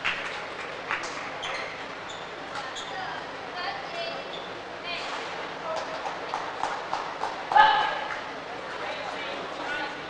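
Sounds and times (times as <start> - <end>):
shoe squeaking on court floor: 1.0 - 3.3, 4.2 - 5.2.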